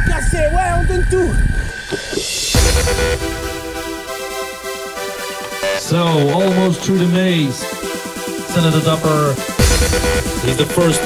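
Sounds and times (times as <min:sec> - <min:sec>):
background music high note: 0:02.5 - 0:11.0
man speaking: 0:05.8 - 0:07.8, 0:08.5 - 0:09.6, 0:10.4 - 0:11.0.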